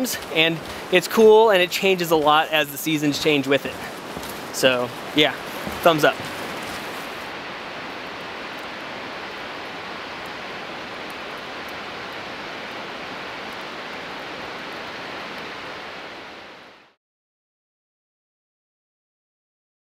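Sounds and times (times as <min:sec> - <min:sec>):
falling water rushing: 0:00.0 - 0:17.0.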